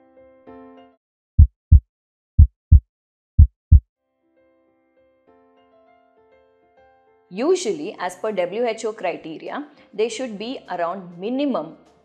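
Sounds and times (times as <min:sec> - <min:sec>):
heartbeat thumps: 0:01.4 - 0:01.8, 0:02.4 - 0:02.8, 0:03.4 - 0:03.8.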